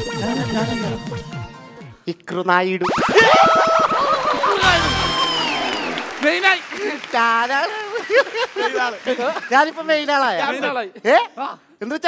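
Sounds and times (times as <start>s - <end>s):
comic boing sound effect: 2.8s - 4.0s.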